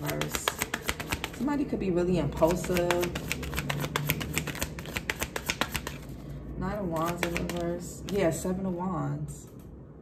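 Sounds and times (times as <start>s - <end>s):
cards being shuffled by hand: 0.0s - 1.5s, 2.4s - 6.2s, 6.8s - 8.4s.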